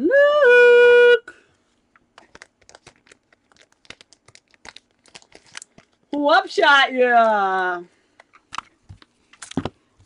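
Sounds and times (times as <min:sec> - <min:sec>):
trading cards crinkling and clicking: 0:01.9 - 0:06.2, 0:08.1 - 0:09.8.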